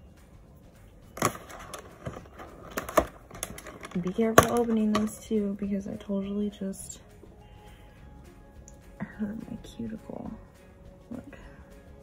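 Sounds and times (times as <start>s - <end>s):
packaging clicks and crackles: 1.2s - 5.0s.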